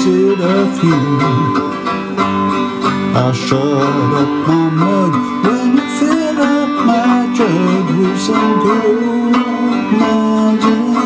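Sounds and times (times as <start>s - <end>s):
man singing: 0.0s - 2.0s, 2.9s - 11.0s
banjo playing: 0.0s - 11.0s
second banjo picking: 0.0s - 11.0s.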